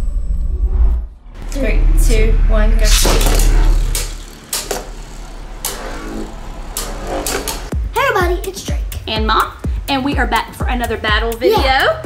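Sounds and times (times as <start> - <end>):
fast downward sweep: 0.6 - 7.7
music: 1.2 - 12.0.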